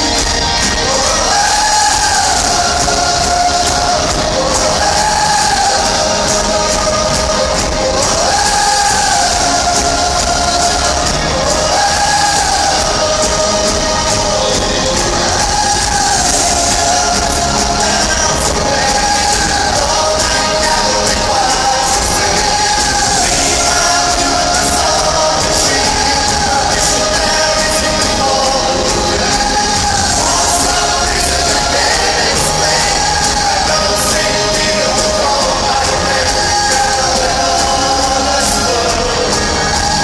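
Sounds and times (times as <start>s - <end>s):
crowd cheering: 0.0s - 40.0s
live pop song over loudspeakers: 0.0s - 40.0s.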